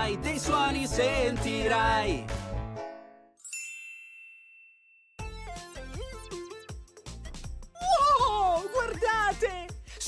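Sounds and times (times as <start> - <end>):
bright chime ding: 3.4 - 5.2.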